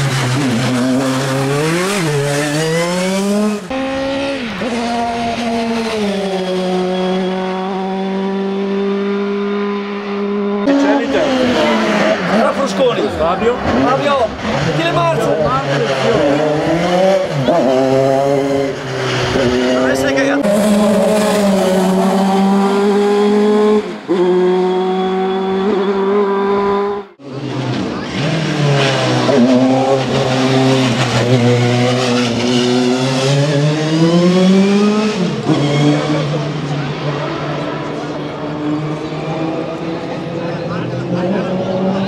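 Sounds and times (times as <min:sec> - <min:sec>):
race car engine shifting gears: 0:00.0 - 0:42.0.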